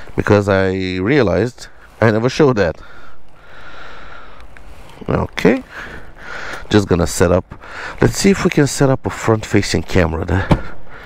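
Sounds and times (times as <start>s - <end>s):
person breathing: 2.8s - 6.7s, 7.5s - 8.0s, 10.5s - 11.0s.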